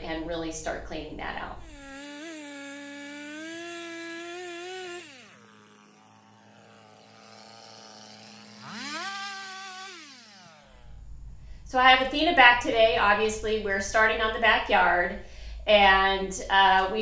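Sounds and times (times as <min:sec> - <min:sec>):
chainsaw cutting log: 0:01.6 - 0:11.0.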